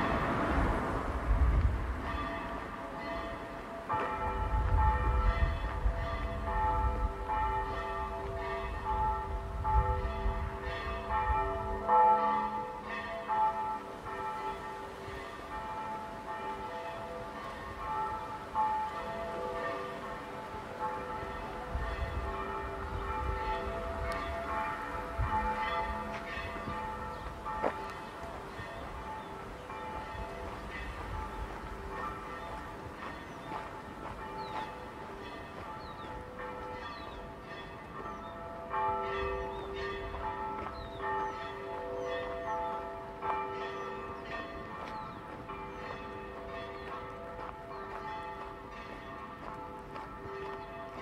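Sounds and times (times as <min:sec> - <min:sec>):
church bells ringing: 0:00.0 - 0:51.0.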